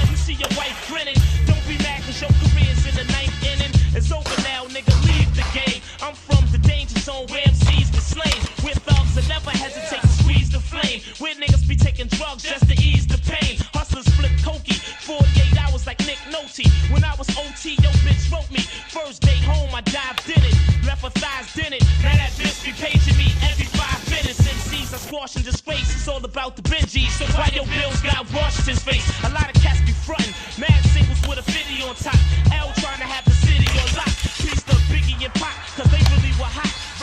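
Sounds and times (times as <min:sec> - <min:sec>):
man rapping over a beat: 0:00.0 - 0:37.0.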